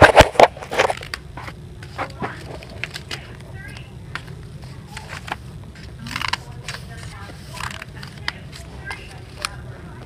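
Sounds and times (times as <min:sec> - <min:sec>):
paper rustling: 0:04.1 - 0:09.6.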